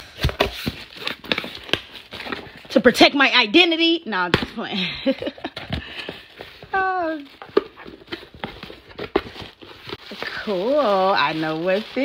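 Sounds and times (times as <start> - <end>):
cardboard crackles: 5.2 - 12.0.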